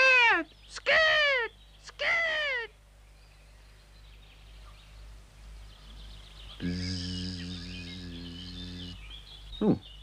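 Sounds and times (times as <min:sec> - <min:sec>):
faint birdsong chirps: 0:00.0 - 0:10.0
low steady hum: 0:00.0 - 0:10.0.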